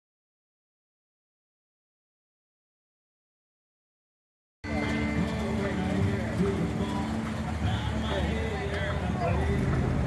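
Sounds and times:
background music: 0:04.6 - 0:10.0
car rolling past slowly: 0:04.6 - 0:10.0
onlookers' voices: 0:04.6 - 0:10.0.

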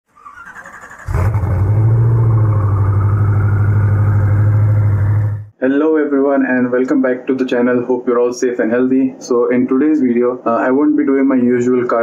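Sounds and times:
car engine running: 0:01.1 - 0:05.5
faint rising whine: 0:01.5 - 0:05.5.

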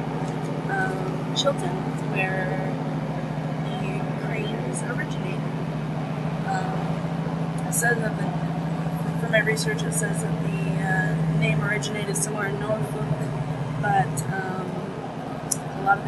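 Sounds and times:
train hum from inside carriage: 0:00.0 - 0:16.0
woman's voice: 0:00.7 - 0:02.8, 0:03.6 - 0:05.5, 0:06.5 - 0:07.0, 0:07.6 - 0:08.4, 0:09.0 - 0:16.0.

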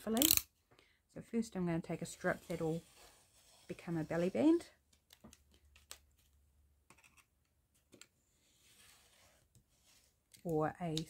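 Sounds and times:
craft knife cutting along ruler: 0:02.2 - 0:04.3.

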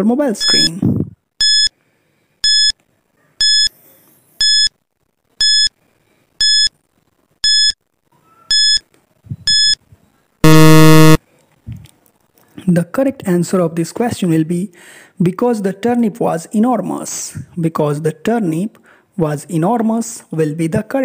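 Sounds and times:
short high beeps: 0:08.5 - 0:08.8, 0:09.5 - 0:09.8, 0:10.4 - 0:11.2
low buzzer: 0:10.4 - 0:11.2.

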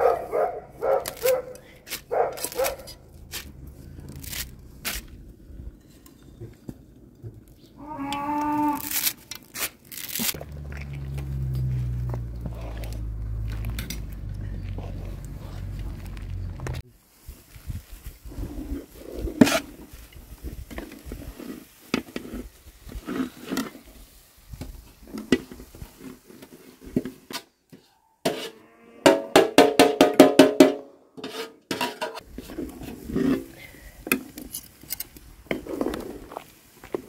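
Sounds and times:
metal spoon scraping a bowl: 0:31.2 - 0:32.2.

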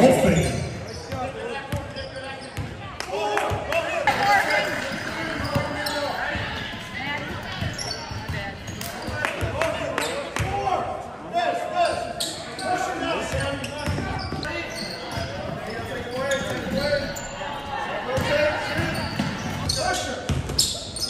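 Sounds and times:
people talking and calling out: 0:00.0 - 0:21.0.

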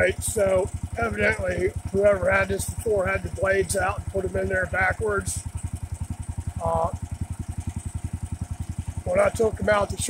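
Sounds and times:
single-cylinder engine running: 0:00.0 - 0:10.0.

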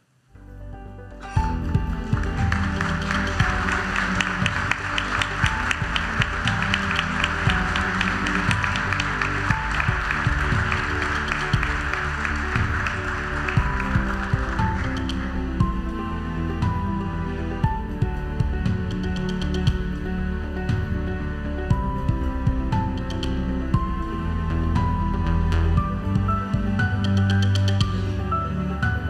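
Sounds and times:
instrumental music: 0:00.3 - 0:29.0
audience applause: 0:01.3 - 0:17.4.

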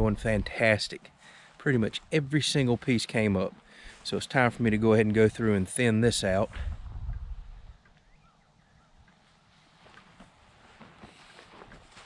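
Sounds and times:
soft footsteps on grass: 0:00.0 - 0:08.1, 0:08.8 - 0:12.0
faint bird chirps: 0:07.7 - 0:09.1.

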